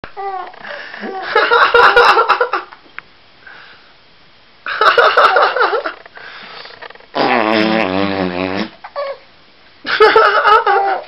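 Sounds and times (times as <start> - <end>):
baby laughing: 10.0 - 11.0.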